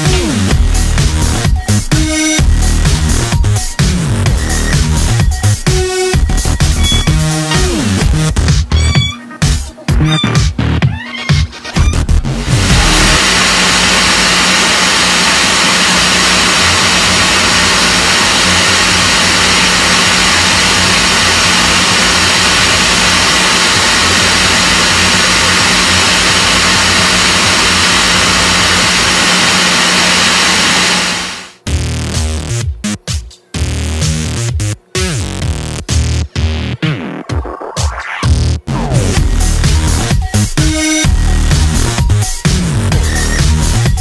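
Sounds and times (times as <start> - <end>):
hair dryer running: 12.6 - 31.6.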